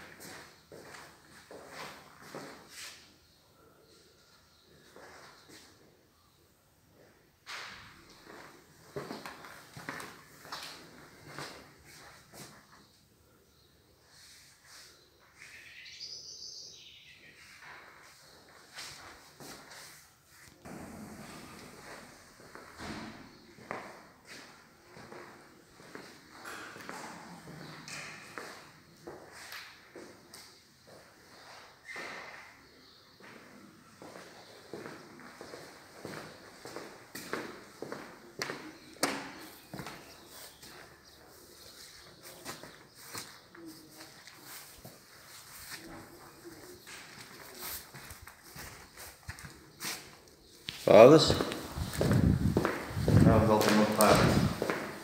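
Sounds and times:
footsteps on hard floors: 7.5 - 12.6, 34.0 - 55.0.

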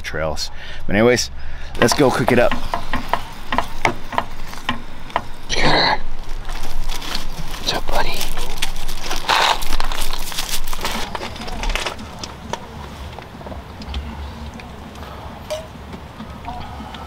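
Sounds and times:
low outdoor rumble: 0.0 - 17.0
footsteps crunching on gravel: 6.1 - 13.7.

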